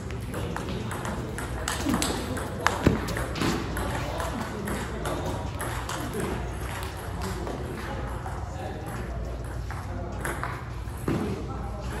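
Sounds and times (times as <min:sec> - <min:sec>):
voices talking in a hall: 0:00.0 - 0:12.0
table tennis ball taps: 0:00.6 - 0:06.3.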